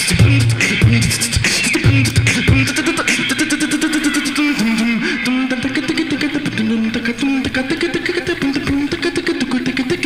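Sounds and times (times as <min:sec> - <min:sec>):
beatboxing bass humming: 0:00.0 - 0:10.0.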